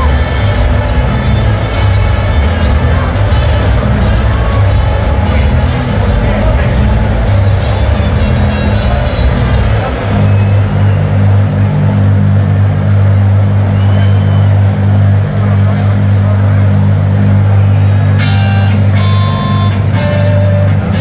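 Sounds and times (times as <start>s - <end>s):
crowd noise: 0.0s - 21.0s.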